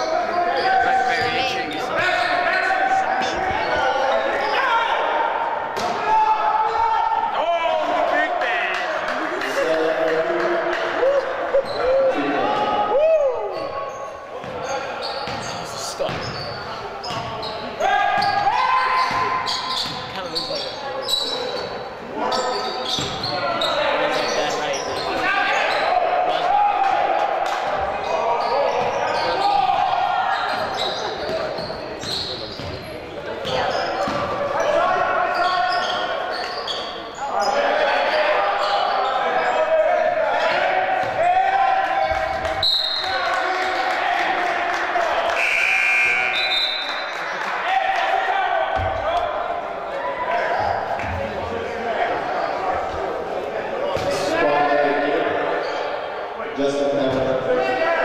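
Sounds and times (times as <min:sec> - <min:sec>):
players shouting: 0:00.0 - 0:20.4, 0:22.0 - 0:31.8, 0:33.3 - 0:56.0.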